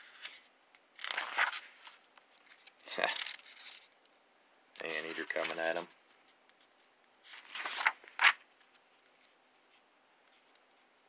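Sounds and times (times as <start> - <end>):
paper page turning: 0.1 - 3.9, 4.8 - 5.9, 6.6 - 9.8.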